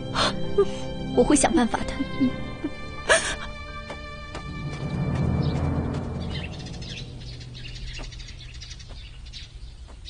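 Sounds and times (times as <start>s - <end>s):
small songbirds chirping: 3.6s - 10.0s.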